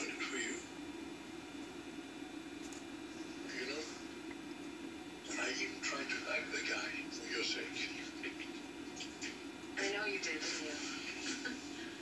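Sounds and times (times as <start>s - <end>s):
steady hum: 0.0s - 12.0s
television speech: 0.0s - 12.0s.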